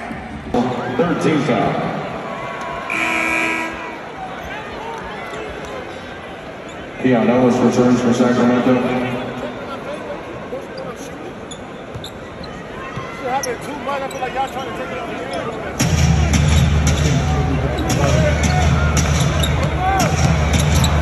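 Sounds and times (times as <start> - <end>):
arena crowd murmur: 0.0 - 21.0
loud music with heavy bass beat: 15.8 - 21.0.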